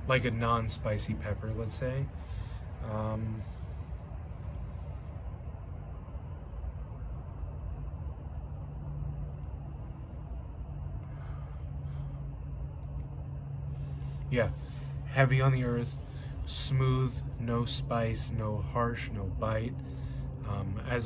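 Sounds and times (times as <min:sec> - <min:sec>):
low background rumble: 0:00.0 - 0:21.0.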